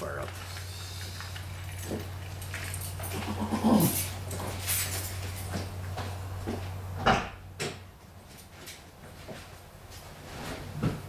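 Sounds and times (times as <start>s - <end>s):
steady low hum: 0.0s - 11.0s
light steps and knocks: 4.0s - 11.0s.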